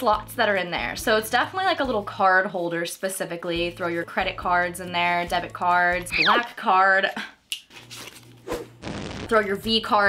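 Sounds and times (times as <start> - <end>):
burst of noise sound effect: 8.8 - 9.4.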